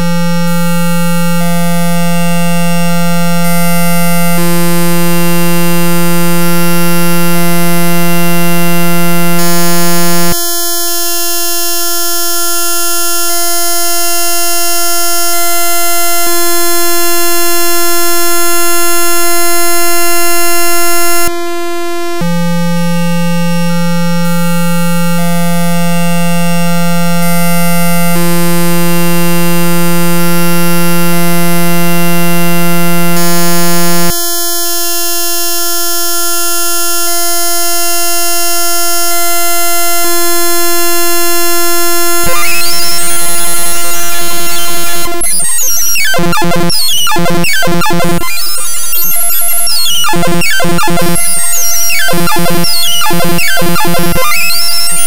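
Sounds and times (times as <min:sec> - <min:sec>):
buzzy sustained electronic tones: 0:00.0 - 0:35.1, 0:37.0 - 0:55.0.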